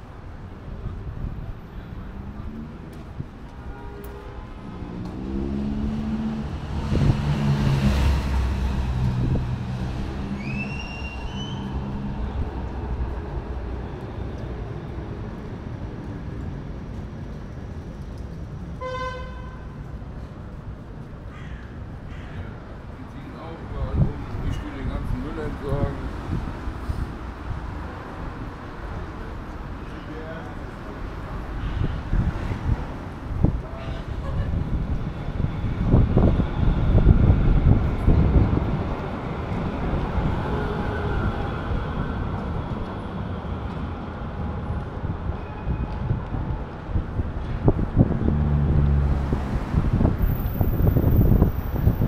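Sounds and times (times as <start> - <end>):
city traffic rumble: 0.0 - 52.0
vehicle horn toot: 18.8 - 19.6.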